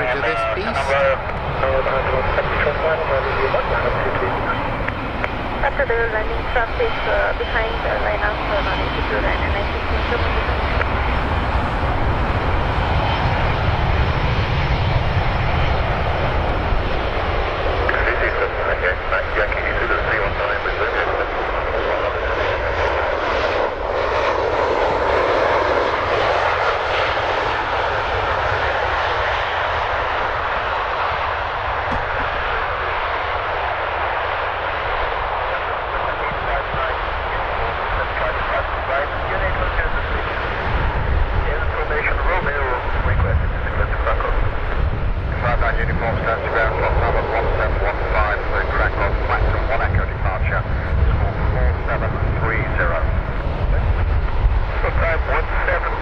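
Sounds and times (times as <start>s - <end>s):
jet aircraft taxiing: 0.0s - 56.0s.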